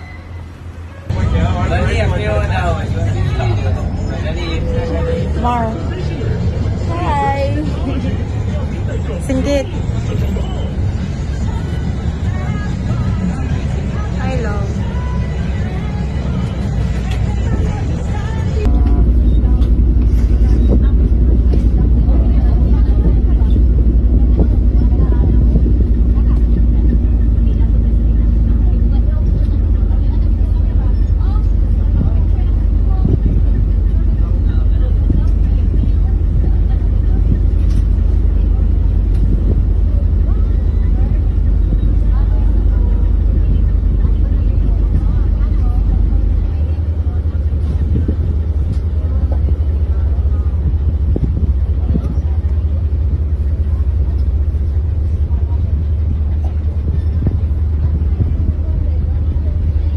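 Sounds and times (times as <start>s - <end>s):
ferry diesel engines rumbling: 0.0s - 59.9s.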